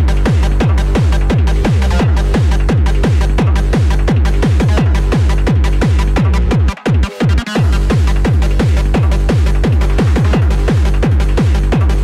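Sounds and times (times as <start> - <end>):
fast kick drum: 0.0 - 12.0.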